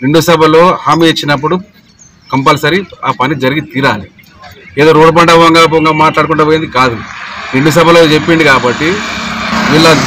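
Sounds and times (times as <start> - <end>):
man speaking into a microphone: 0.0 - 10.0.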